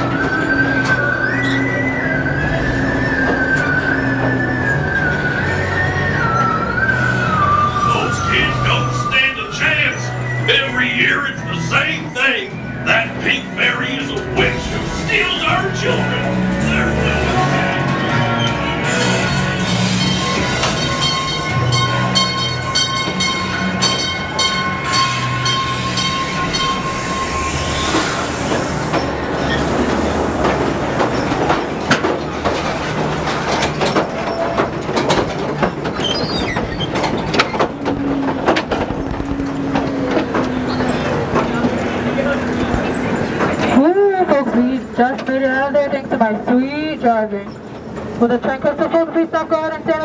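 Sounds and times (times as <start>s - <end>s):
music-like steady tones: 0.0s - 36.0s
train cars rumbling on track: 0.0s - 50.0s
wheels clacking on rails: 0.0s - 50.0s.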